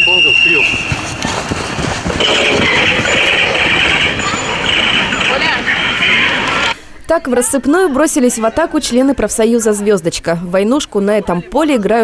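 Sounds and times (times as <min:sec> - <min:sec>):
loud dense commotion: 0:00.0 - 0:06.8
faint voices: 0:00.0 - 0:09.2
steady high-pitched noise: 0:02.1 - 0:06.8.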